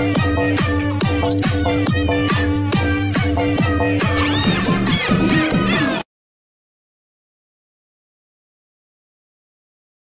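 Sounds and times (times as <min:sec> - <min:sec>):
music: 0:00.0 - 0:06.1.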